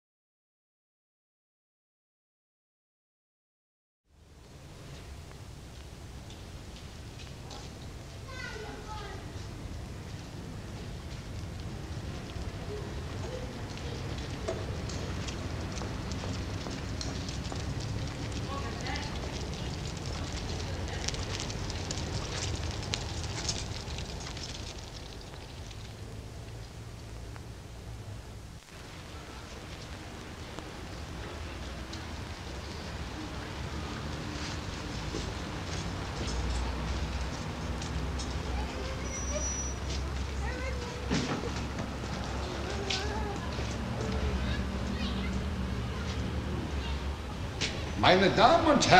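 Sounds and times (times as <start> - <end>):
low street rumble: 4.1 - 48.9
handcart rattling on wet street: 7.2 - 27.8, 28.9 - 48.9.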